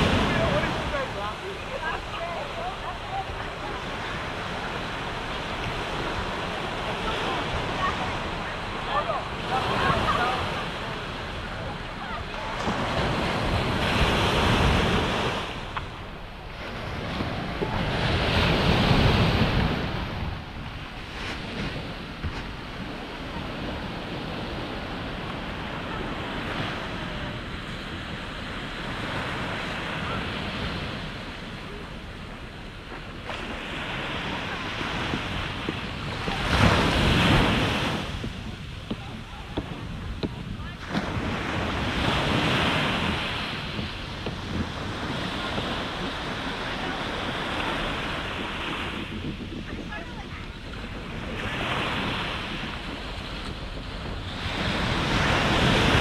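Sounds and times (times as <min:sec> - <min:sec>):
waves breaking on sandy beach: 0:00.0 - 0:56.0
wind rumble on microphone: 0:00.0 - 0:56.0.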